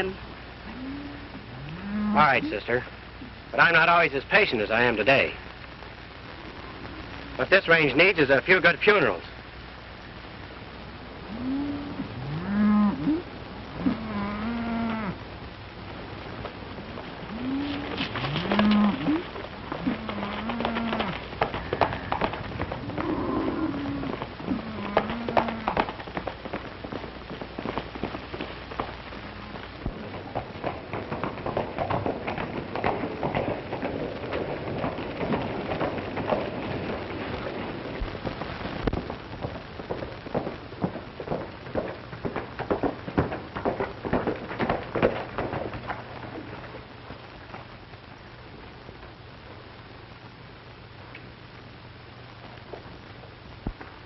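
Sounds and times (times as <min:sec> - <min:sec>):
cattle lowing: 0:00.6 - 0:02.5, 0:11.2 - 0:15.2, 0:16.4 - 0:38.0
hooves clattering: 0:15.2 - 0:49.6.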